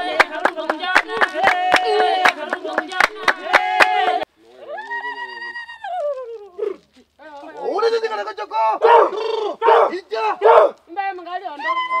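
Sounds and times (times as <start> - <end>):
women chanting: 0.0 - 4.3.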